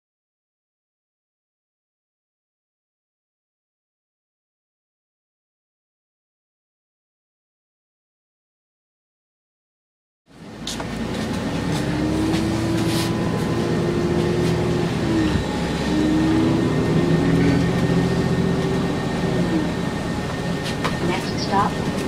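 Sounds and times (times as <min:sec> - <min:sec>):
bus engine and road rumble: 0:10.3 - 0:22.0
drawn-out whine: 0:10.3 - 0:22.0.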